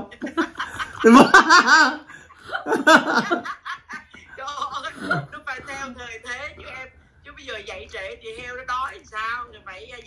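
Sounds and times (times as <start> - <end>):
people laughing: 0.0 - 5.3.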